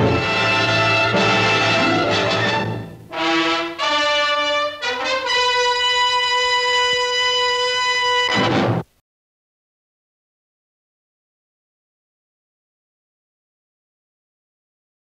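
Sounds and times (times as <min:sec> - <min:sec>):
loud orchestral hit: 0:00.0 - 0:04.2, 0:08.2 - 0:08.9
orchestral music: 0:00.0 - 0:08.8
brass notes: 0:00.0 - 0:08.9.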